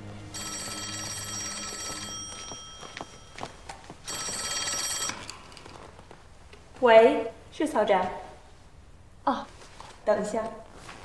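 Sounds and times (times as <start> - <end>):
desk telephone ringing: 0.3 - 5.4.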